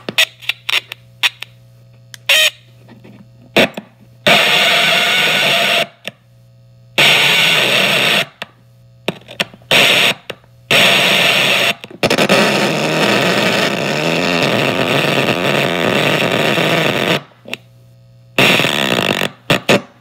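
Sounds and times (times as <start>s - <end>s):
low amplifier hum: 0.0s - 20.0s.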